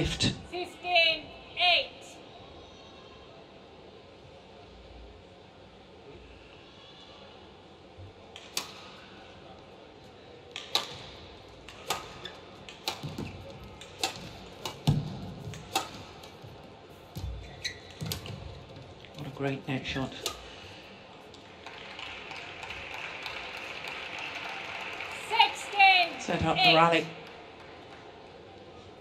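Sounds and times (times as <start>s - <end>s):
shuttlecock struck with rackets: 11.7s - 16.1s.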